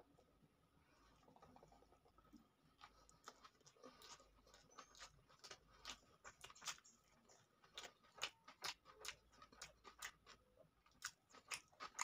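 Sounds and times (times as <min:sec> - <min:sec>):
close-miked chewing: 0:01.0 - 0:12.0.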